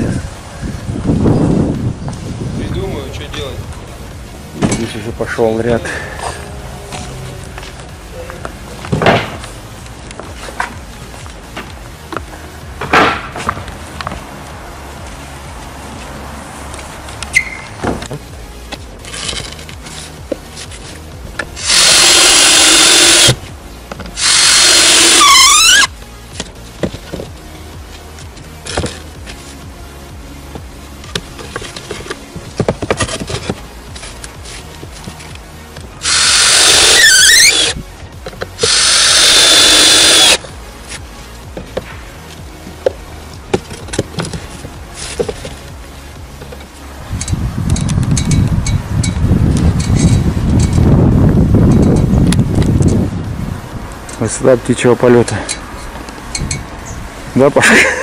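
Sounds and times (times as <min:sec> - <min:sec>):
faint background music: 0:00.0 - 0:58.0
knocks of boards being handled: 0:08.8 - 0:09.5, 0:11.6 - 0:14.2, 0:17.8 - 0:18.2
cordless drill driving screws: 0:21.6 - 0:23.4, 0:24.2 - 0:25.9, 0:36.0 - 0:37.8, 0:38.6 - 0:40.4.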